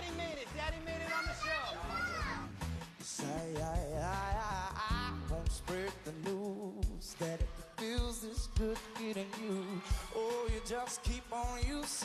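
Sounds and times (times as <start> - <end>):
background music: 0.0 - 12.0
child's high-pitched voice: 1.0 - 2.5.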